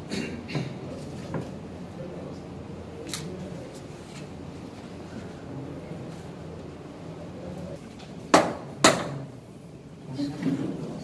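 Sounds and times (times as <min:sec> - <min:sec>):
low room noise: 0:00.0 - 0:11.0
sharp knocks: 0:08.3 - 0:09.2.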